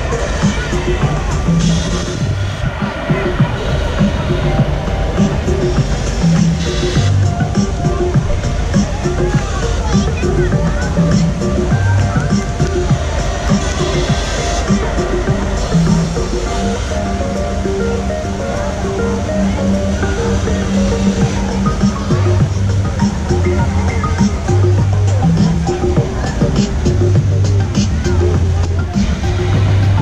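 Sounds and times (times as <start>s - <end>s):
fountain water rushing: 0.0s - 30.0s.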